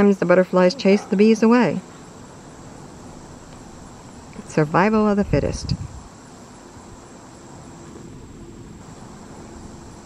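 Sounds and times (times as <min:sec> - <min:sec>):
insects trilling: 0:00.0 - 0:10.0
low background hiss: 0:00.0 - 0:10.0.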